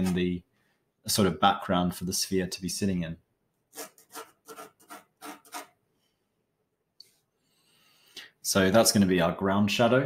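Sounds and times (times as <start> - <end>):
pencil scratching on canvas: 3.7 - 5.8.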